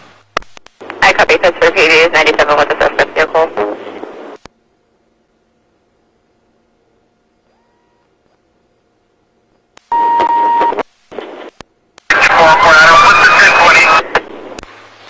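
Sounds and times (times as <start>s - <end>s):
radio static: 0.4s - 4.4s, 9.8s - 14.8s
short radio beep: 9.9s - 10.8s
garbled radio voice: 12.1s - 14.3s.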